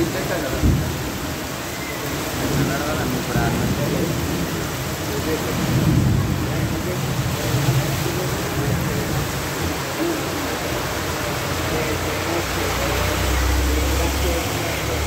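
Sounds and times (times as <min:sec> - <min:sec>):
heavy rain pouring: 0:00.0 - 0:15.0.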